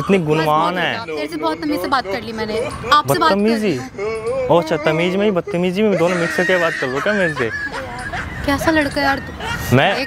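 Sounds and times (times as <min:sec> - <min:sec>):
man and woman arguing: 0:00.0 - 0:10.0.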